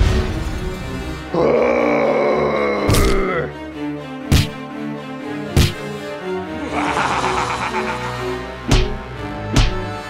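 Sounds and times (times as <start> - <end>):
background music: 0.0 - 10.0
long pitched vocal effect: 6.6 - 8.5.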